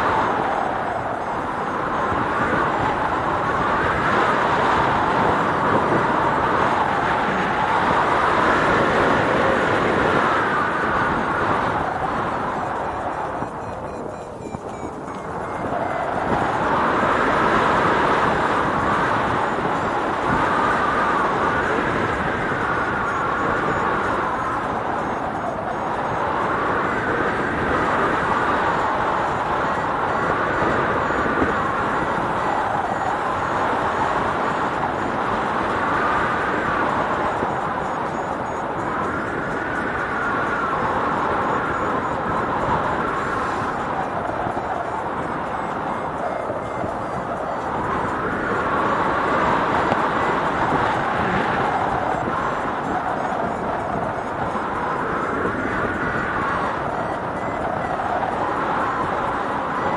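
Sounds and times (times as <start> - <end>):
wind rushing on microphone: 0.0 - 59.9.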